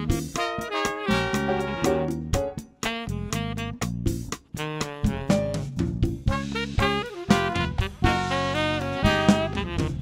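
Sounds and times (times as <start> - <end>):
jazz band playing blues: 0.0 - 10.0
drum hits: 1.2 - 2.7.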